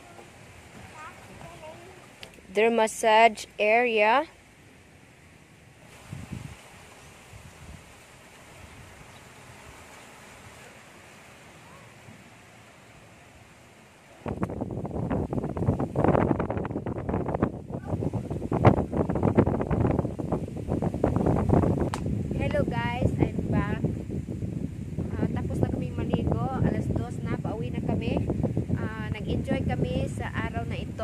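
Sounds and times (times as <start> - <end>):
faint outdoor hiss: 0.0 - 31.0
wind buffeting microphone: 5.4 - 10.8, 14.1 - 31.0.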